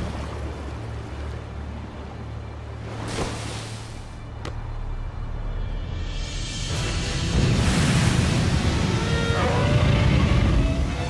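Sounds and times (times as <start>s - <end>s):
water rushing: 0.0s - 4.4s
tense film score: 4.0s - 11.0s.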